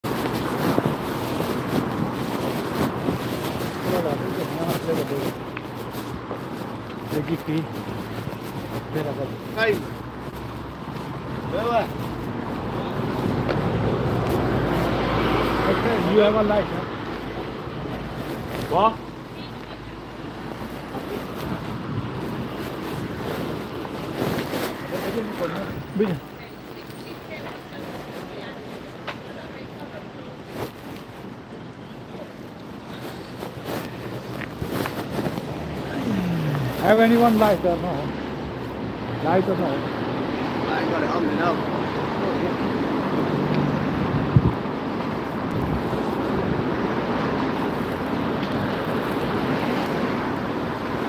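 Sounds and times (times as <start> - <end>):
wind buffeting microphone: 0.0 - 29.0, 42.8 - 51.0.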